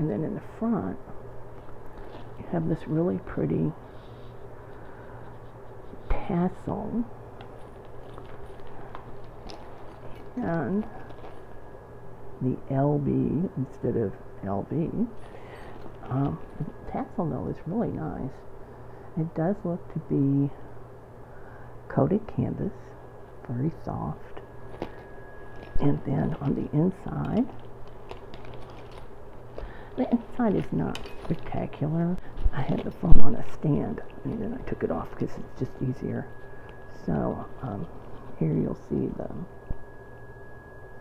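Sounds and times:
steady low hum: 0.0s - 41.0s
bag and chain clicks and rustles: 1.4s - 2.4s, 7.3s - 12.0s, 15.1s - 17.2s, 24.4s - 38.4s.

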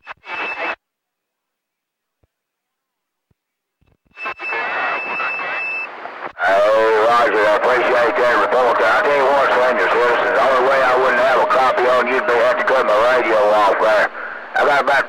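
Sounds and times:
high radio whistles: 0.0s - 0.8s, 4.2s - 15.0s
voice over radio: 6.4s - 15.0s
low radio whistle: 6.5s - 14.6s.

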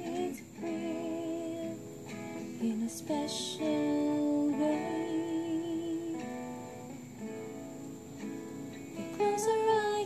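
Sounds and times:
acoustic guitar playing: 0.0s - 10.0s.

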